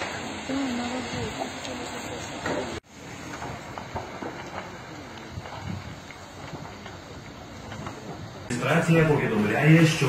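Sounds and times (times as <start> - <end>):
fire rumble and hiss: 0.0 - 10.0.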